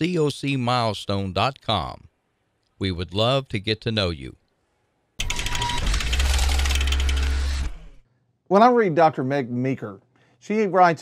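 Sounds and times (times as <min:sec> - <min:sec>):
rapid clicking mechanical whir: 0:05.2 - 0:08.0.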